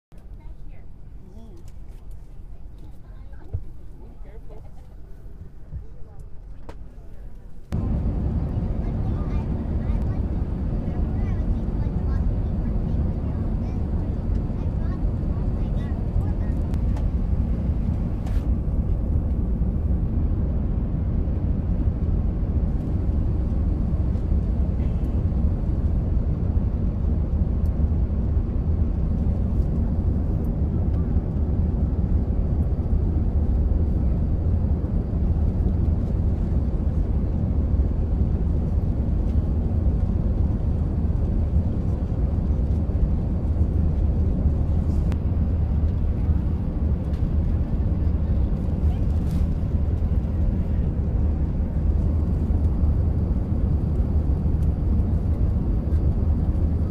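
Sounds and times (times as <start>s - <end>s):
jet cabin engine rumble: 0.2s - 56.9s.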